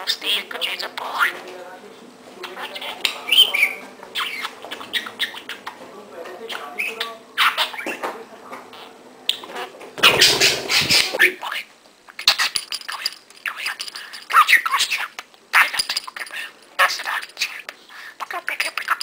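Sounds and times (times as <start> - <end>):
budgerigar chattering: 2.6 - 5.8, 8.8 - 11.5.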